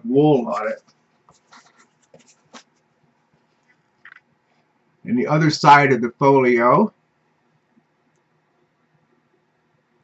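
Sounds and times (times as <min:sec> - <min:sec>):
art folio handling scuffs and taps: 0:01.3 - 0:02.8.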